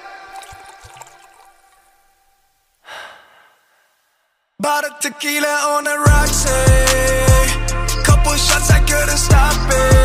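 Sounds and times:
background music: 0:00.0 - 0:02.2, 0:04.7 - 0:10.0.

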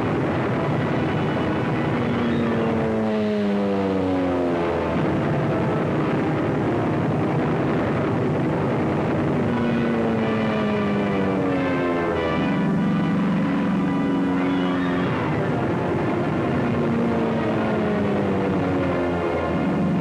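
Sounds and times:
aircraft engines roaring: 0:00.0 - 0:20.0.

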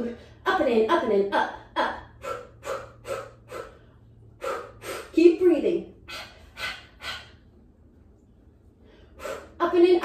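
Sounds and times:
woman giving exercise cues: 0:00.0 - 0:03.7, 0:04.6 - 0:07.3, 0:09.3 - 0:10.0
effortful breaths: 0:02.1 - 0:05.2, 0:06.0 - 0:07.6, 0:08.6 - 0:09.6.

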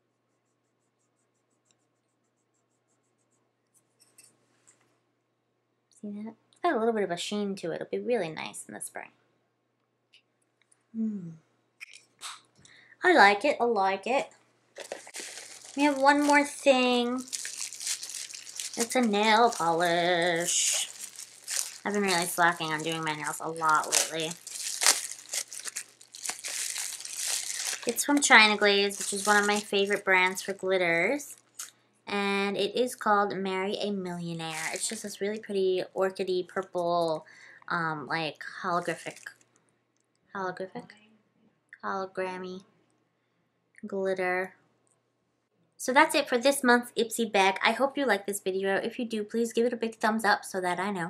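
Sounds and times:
fingertip rubbing powder: 0:00.0 - 0:04.4
packaging crinkling: 0:14.8 - 0:31.7, 0:34.4 - 0:35.2, 0:38.8 - 0:39.4.

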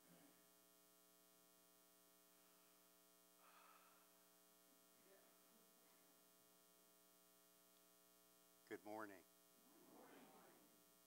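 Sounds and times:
faint electrical hum: 0:00.0 - 0:11.0.

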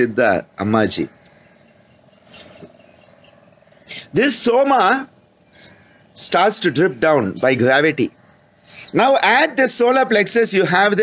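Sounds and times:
faint steady tone: 0:00.0 - 0:11.0
soft breath: 0:05.5 - 0:06.2, 0:08.1 - 0:09.0.

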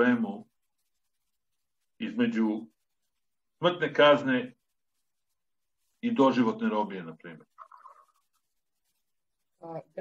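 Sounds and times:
man speaking: 0:00.0 - 0:00.5, 0:02.0 - 0:02.8, 0:03.6 - 0:04.6, 0:06.0 - 0:07.6.

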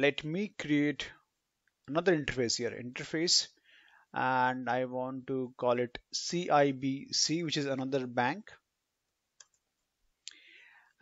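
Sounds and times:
person speaking: 0:00.0 - 0:08.7
soft intake of breath: 0:03.6 - 0:04.1, 0:10.3 - 0:11.0.

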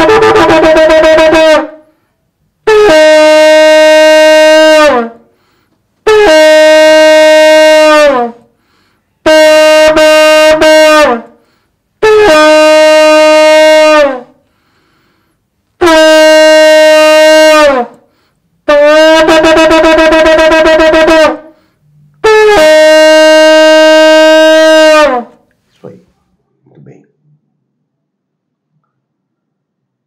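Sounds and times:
ram's horn blasts: 0:00.0 - 0:02.0, 0:02.6 - 0:14.7, 0:15.8 - 0:25.5.

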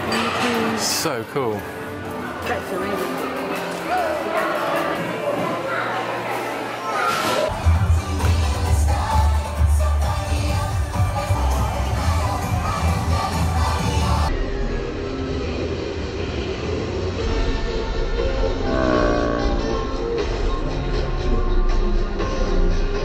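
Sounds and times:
crowd noise: 0:00.0 - 0:17.2
upbeat music with heavy bass: 0:07.5 - 0:14.3.

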